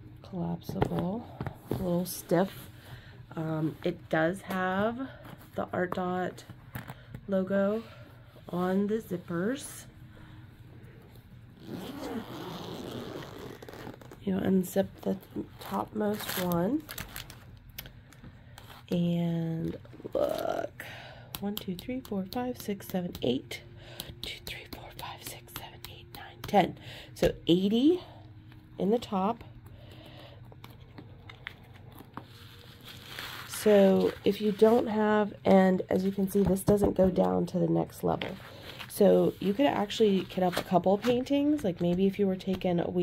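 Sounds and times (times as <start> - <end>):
zipper being pulled open: 11.6 - 14.2.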